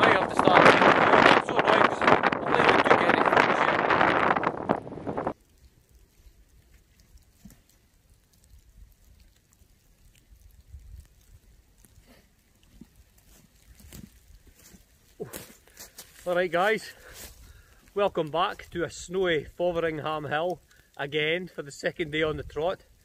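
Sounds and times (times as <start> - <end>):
strong wind buffeting microphone: 0.0 - 5.4
faint low wind rumble: 0.0 - 23.0
soft footsteps in snow: 12.8 - 17.4.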